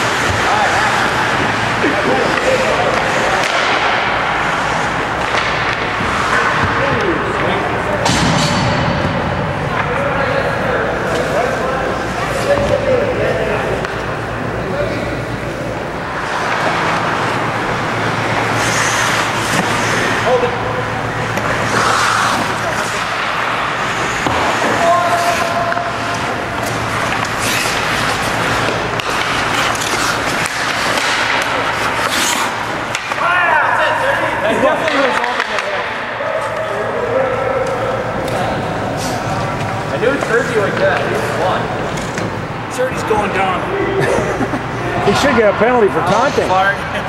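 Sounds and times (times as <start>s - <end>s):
hockey sticks and puck clacking: 0.0s - 43.3s
skate blades scraping ice: 16.1s - 20.6s, 21.3s - 33.3s.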